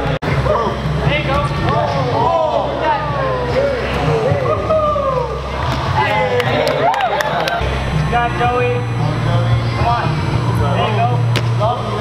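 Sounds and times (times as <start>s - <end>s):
indistinct voices in a hall: 0.0s - 12.0s
steady low hum: 0.0s - 12.0s.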